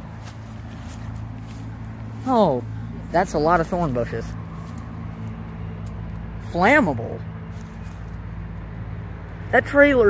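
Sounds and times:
footsteps through tall grass: 0.0 - 6.3, 7.5 - 8.4
steady low hum: 0.0 - 10.0.

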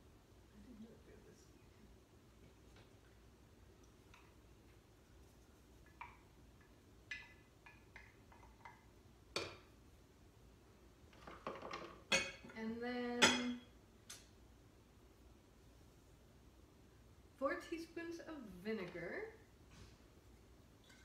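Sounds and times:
clatter of dishes: 11.1 - 12.6.

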